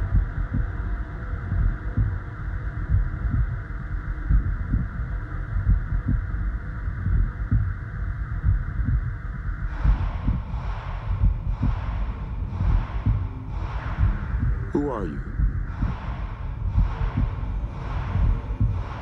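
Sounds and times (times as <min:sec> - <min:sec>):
low throbbing pulses: 0:00.0 - 0:19.0.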